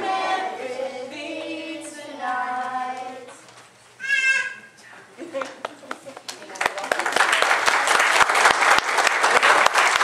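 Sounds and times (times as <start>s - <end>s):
child's high-pitched call: 4.0s - 4.7s.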